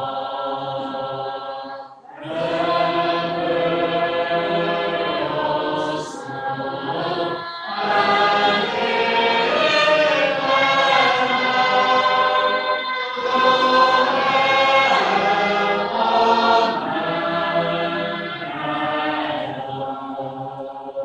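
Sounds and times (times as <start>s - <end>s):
congregation singing unaccompanied: 0.0s - 21.0s.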